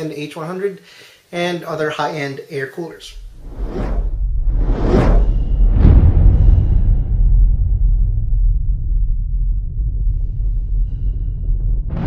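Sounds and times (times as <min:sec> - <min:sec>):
deep low rumble: 0:03.1 - 0:12.0
whooshes: 0:03.1 - 0:12.0.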